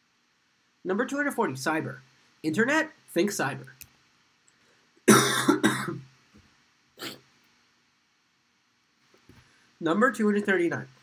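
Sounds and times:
man coughing: 5.1 - 6.1.

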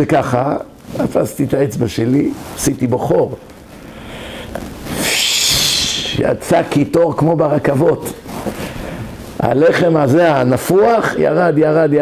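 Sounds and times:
man hissing with his mouth: 4.0 - 6.2.

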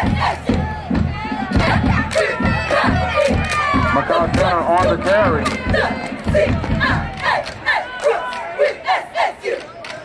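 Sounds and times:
cheerleaders chanting in unison: 0.0 - 10.0.

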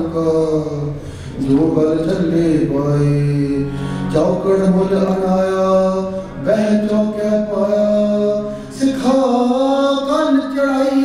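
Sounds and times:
harmonium: 0.0 - 11.0
man singing long held notes: 0.0 - 11.0.

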